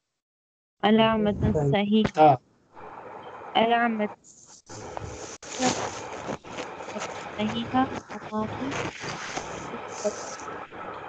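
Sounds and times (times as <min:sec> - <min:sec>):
buzzing hissy call audio: 0:03.6 - 0:10.9
faint broken voice: 0:06.9 - 0:10.4.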